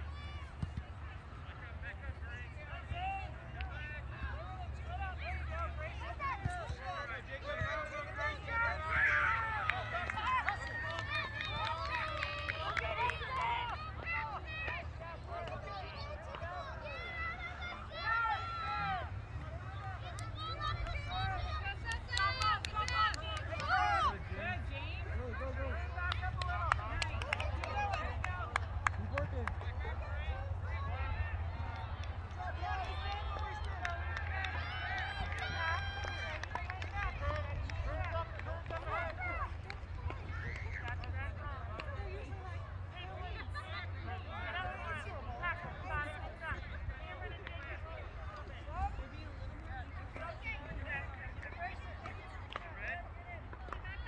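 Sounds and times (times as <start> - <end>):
children shouting: 15.8 - 24.2.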